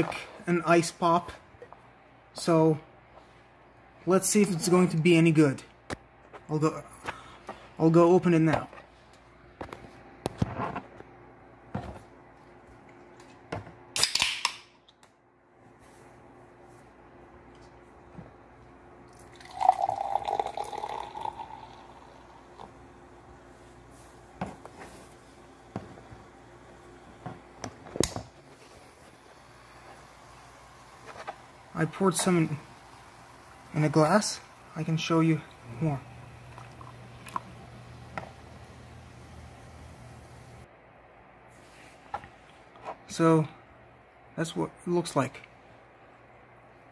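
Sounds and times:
soda can opening with fizz: 0:14.0 - 0:14.6
soda pouring into glass: 0:19.1 - 0:23.0, 0:29.1 - 0:38.7.

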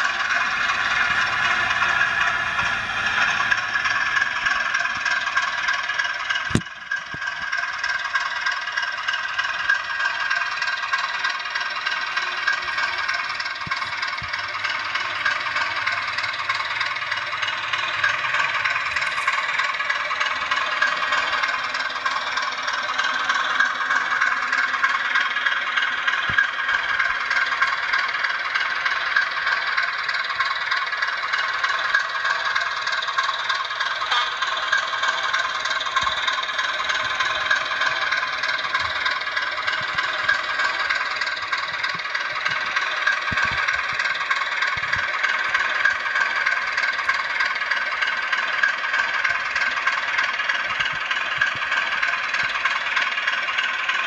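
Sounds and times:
diesel engine sound from small speaker: 0:00.0 - 0:54.0.

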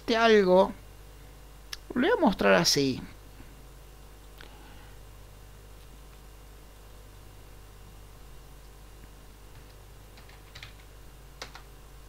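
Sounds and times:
computer keyboard key presses: 0:09.6 - 0:11.7.

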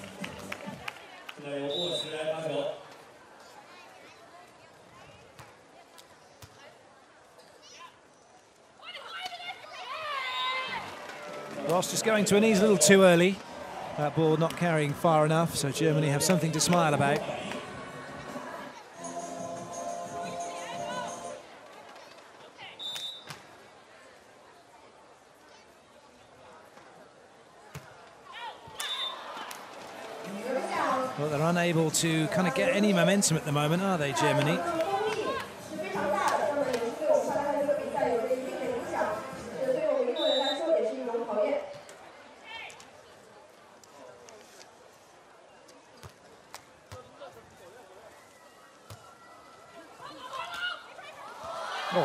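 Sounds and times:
murmur of crowd voices: 0:00.0 - 0:52.0
commentator speaking: 0:11.7 - 0:13.4, 0:14.0 - 0:17.4, 0:30.3 - 0:34.9.

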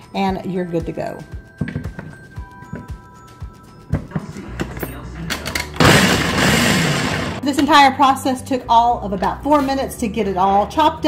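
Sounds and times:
blender motor chopping: 0:05.8 - 0:07.4.

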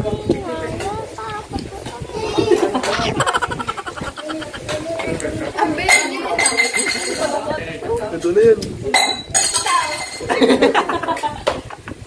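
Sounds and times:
people talking: 0:00.0 - 0:11.4
cutlery clinking on plates: 0:05.8 - 0:07.4, 0:08.9 - 0:10.4.

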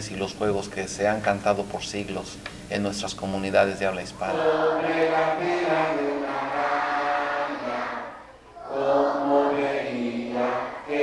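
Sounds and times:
voices singing together: 0:04.2 - 0:11.0.

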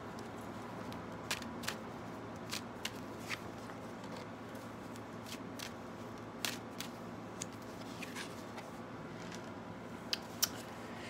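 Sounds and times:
cards shuffling and snapping: 0:00.8 - 0:01.8, 0:02.4 - 0:03.5, 0:04.9 - 0:05.8, 0:06.4 - 0:08.3.

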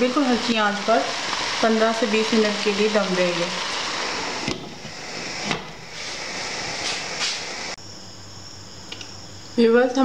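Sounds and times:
steam hissing from pan: 0:00.0 - 0:07.8.

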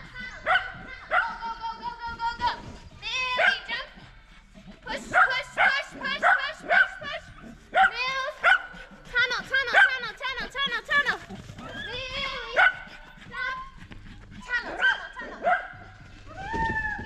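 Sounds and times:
small dog barking: 0:05.1 - 0:07.1, 0:07.7 - 0:08.7, 0:09.7 - 0:09.9, 0:12.6 - 0:12.9, 0:14.8 - 0:15.9.

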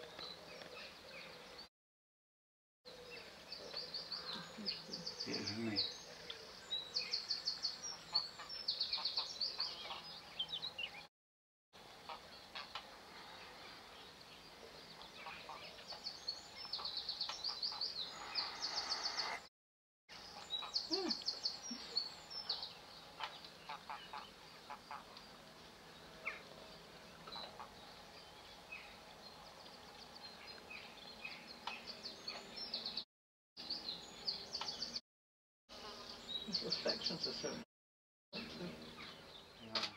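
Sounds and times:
small birds chirping and trilling: 0:02.9 - 0:11.1, 0:11.8 - 0:19.5, 0:20.1 - 0:33.0, 0:33.6 - 0:35.0, 0:35.8 - 0:37.6, 0:38.4 - 0:39.9
faint steady outdoor hiss: 0:11.8 - 0:19.4, 0:20.2 - 0:33.0, 0:35.7 - 0:37.6.

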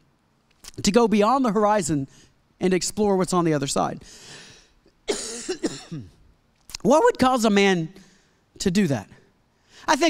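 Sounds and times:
man coughing: 0:05.1 - 0:06.2
throat clearing: 0:05.1 - 0:06.2
man speaking: 0:08.6 - 0:09.2.

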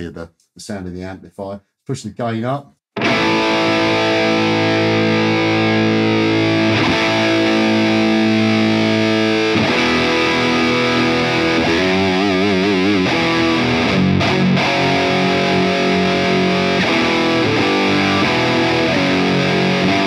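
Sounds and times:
distorted electric guitar chords: 0:03.0 - 0:20.0.

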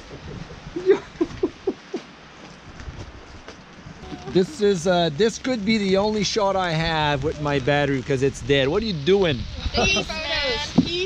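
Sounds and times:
wind noise on microphone: 0:00.0 - 0:02.0, 0:02.6 - 0:11.0.

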